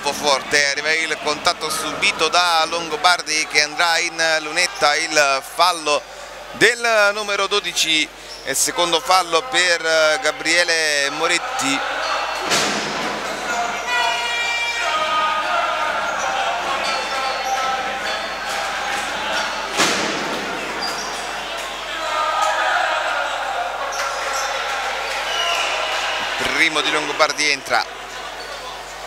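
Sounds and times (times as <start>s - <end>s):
crowd and players' voices echoing: 0.0s - 29.0s.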